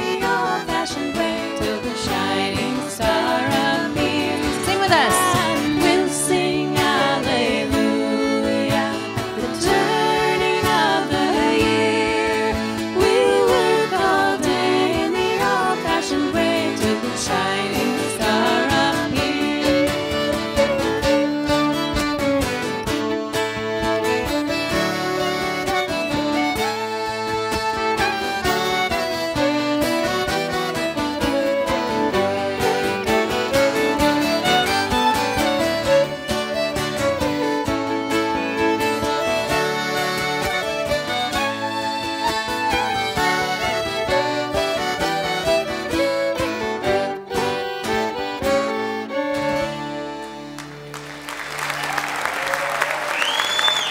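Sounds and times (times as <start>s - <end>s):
strummed acoustic guitars: 0.0s - 51.3s
button accordion: 0.0s - 51.4s
fiddles playing melody: 0.0s - 53.9s.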